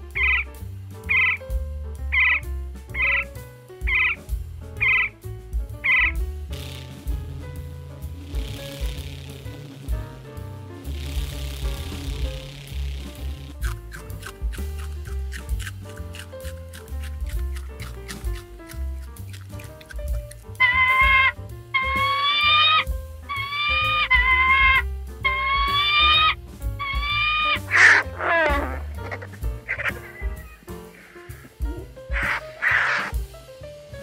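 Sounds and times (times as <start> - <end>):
background music: 0.0 - 34.0
animal calling: 0.1 - 0.5, 1.1 - 1.4, 2.1 - 5.2, 5.8 - 6.2, 13.6 - 33.2
falling animal cry: 3.9 - 4.2, 4.8 - 5.2, 20.6 - 33.2.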